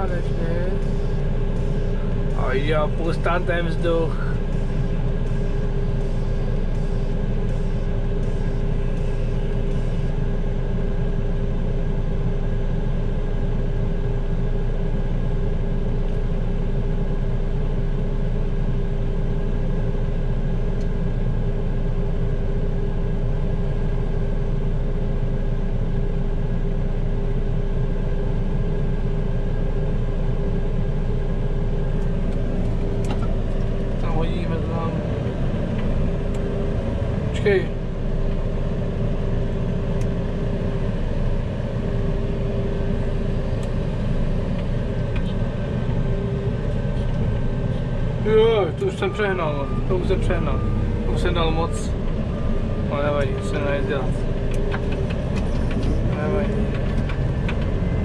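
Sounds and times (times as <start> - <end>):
constant hum: 0.0 - 58.0
diesel engine idling: 0.0 - 58.0.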